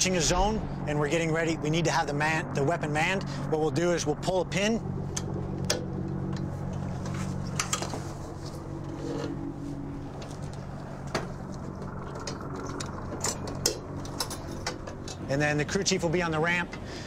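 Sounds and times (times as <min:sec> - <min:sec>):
low machinery hum: 0:00.0 - 0:17.0
metal clicks and clanks: 0:05.1 - 0:08.0, 0:10.2 - 0:15.3.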